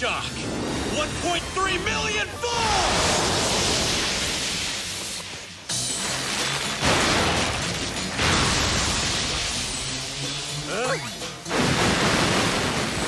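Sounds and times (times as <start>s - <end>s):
electric crackling discharge: 2.8s - 13.0s.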